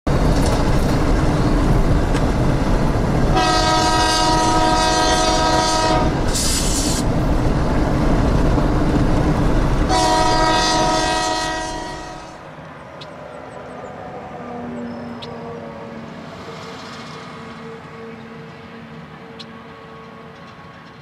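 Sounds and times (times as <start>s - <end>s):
locomotives rumbling past: 0.1s - 21.0s
train air horn chord: 3.3s - 6.9s, 9.9s - 12.4s.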